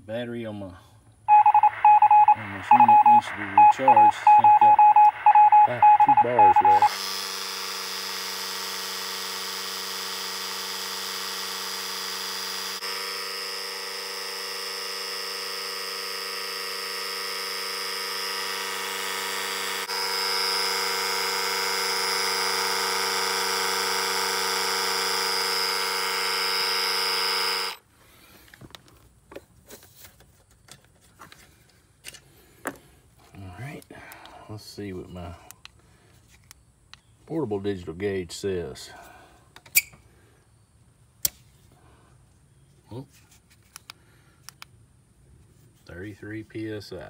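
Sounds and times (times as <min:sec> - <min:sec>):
electric air compressor humming: 0:06.9 - 0:27.9.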